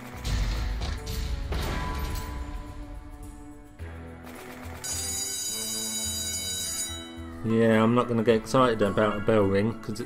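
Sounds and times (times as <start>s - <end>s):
slot machine game music: 0.0s - 10.0s
bell ringing: 4.8s - 7.4s.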